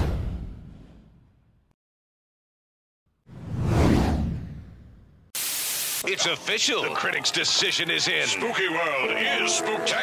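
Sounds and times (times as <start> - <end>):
whoosh transition effect: 3.3 - 5.1
radio static hiss: 5.4 - 6.3.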